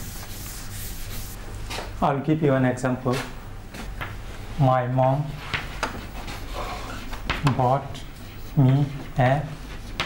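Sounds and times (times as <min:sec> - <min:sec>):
eraser scrubbing blackboard: 0:00.0 - 0:01.4.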